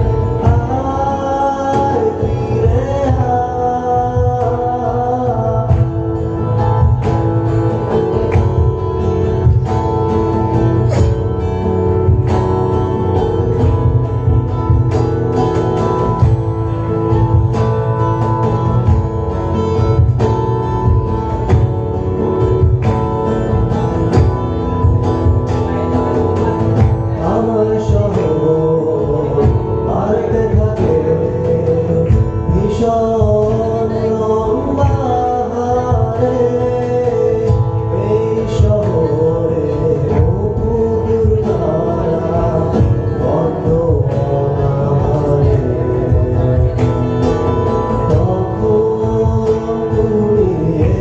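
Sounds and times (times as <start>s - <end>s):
acoustic guitar strumming: 0.0s - 51.0s
cajon beat: 0.0s - 51.0s.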